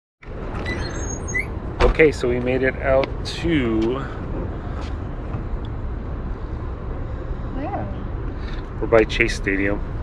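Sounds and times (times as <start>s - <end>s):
road traffic rumble: 0.2s - 10.0s
faint high squeaks: 0.6s - 1.6s.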